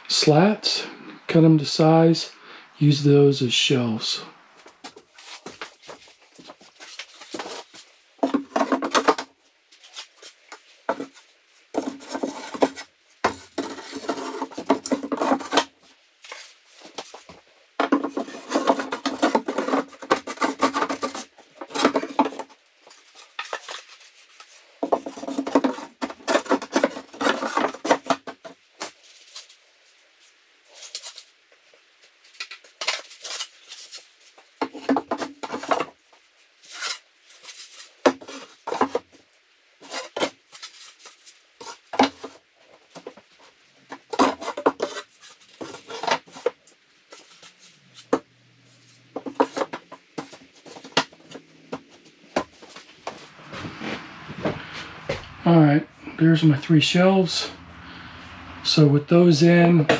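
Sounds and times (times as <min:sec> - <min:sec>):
wooden slats knocking and clattering: 0:17.8 - 0:22.5.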